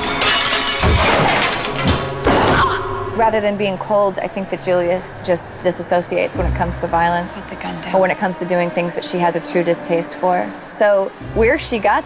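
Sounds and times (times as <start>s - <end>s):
glass shattering: 0.0s - 2.7s
background music: 0.0s - 12.0s.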